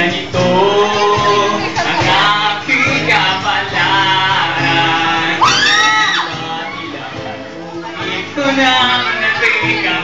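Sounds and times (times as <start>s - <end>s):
man singing into microphone: 0.0s - 10.0s
strummed acoustic guitars: 0.0s - 10.0s
loud high cry: 5.4s - 6.9s.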